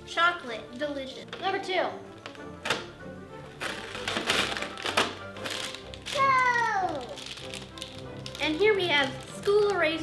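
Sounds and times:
background music: 0:00.0 - 0:10.0
paper tearing: 0:03.6 - 0:10.0.

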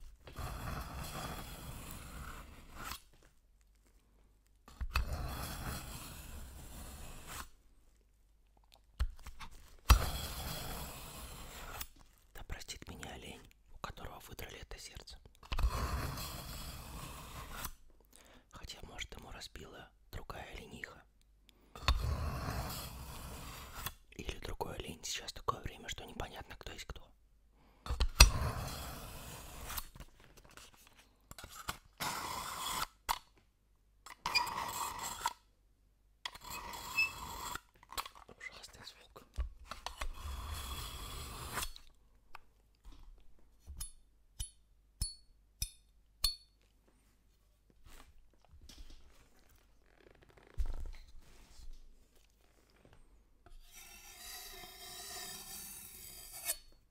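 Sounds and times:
knife scraping through sharpener: 0:00.4 - 0:03.0, 0:04.9 - 0:07.5, 0:09.9 - 0:12.0, 0:15.5 - 0:17.8, 0:28.1 - 0:29.9, 0:31.4 - 0:33.2, 0:34.1 - 0:35.4, 0:36.3 - 0:38.2, 0:39.7 - 0:41.9, 0:53.5 - 0:56.8.

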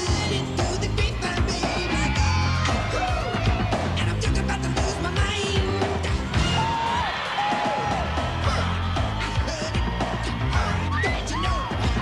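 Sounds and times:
pop music with heavy bass: 0:00.0 - 0:12.0.

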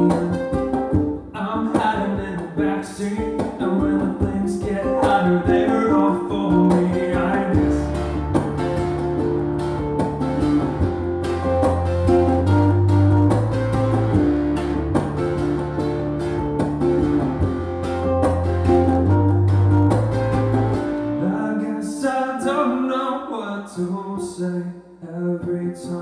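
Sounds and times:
ukulele strummed: 0:00.0 - 0:24.6
low held bass notes: 0:05.8 - 0:21.4.

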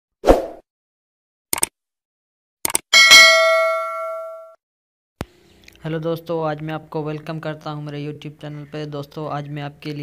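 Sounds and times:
quick double clicks: 0:01.5 - 0:01.7, 0:02.6 - 0:02.8
bell-like ding: 0:03.0 - 0:04.6.

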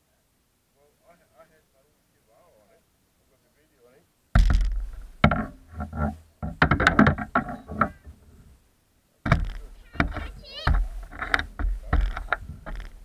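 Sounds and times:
irregular knocks and thumps: 0:04.3 - 0:08.5, 0:09.2 - 0:13.0.

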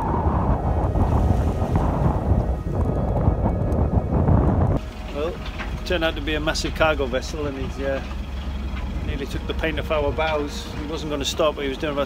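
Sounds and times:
wind noise on microphone: 0:00.0 - 0:06.0
sea rushing around boat: 0:00.0 - 0:12.0.

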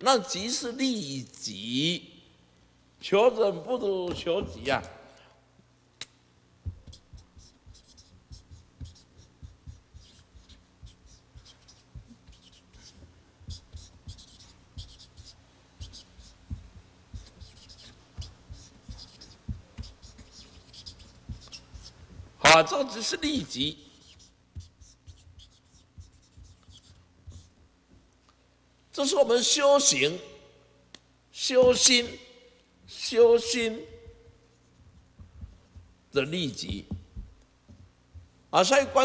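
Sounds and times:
pen tapping: 0:06.6 - 0:22.3
marker squeaking on paper: 0:06.7 - 0:27.7.

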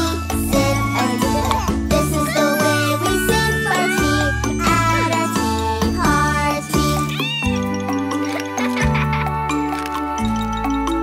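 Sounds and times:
bouncy children's song: 0:00.0 - 0:11.0
cartoon kitten meowing: 0:01.6 - 0:07.8.

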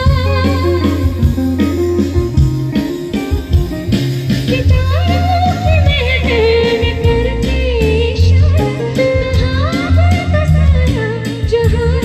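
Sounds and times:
woman singing: 0:00.0 - 0:01.7, 0:04.5 - 0:12.0
bass: 0:00.0 - 0:12.0
keyboard: 0:00.0 - 0:12.0.

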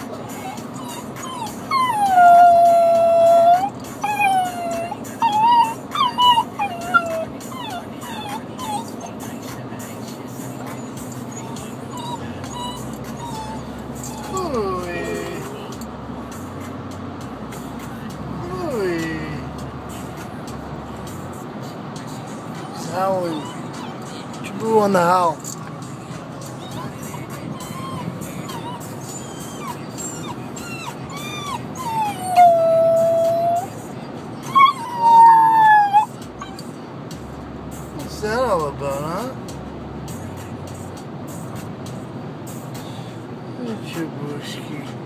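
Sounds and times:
puppy whimpering: 0:00.3 - 0:09.5, 0:11.1 - 0:15.8, 0:22.5 - 0:25.6, 0:26.4 - 0:33.8, 0:34.4 - 0:36.8
puppy whining and yipping: 0:00.3 - 0:09.5, 0:10.6 - 0:15.8, 0:22.5 - 0:25.6, 0:26.4 - 0:33.8, 0:34.4 - 0:36.8
puppy howling: 0:00.5 - 0:09.2, 0:11.3 - 0:15.7, 0:22.6 - 0:24.2, 0:26.6 - 0:33.8, 0:34.4 - 0:36.7.

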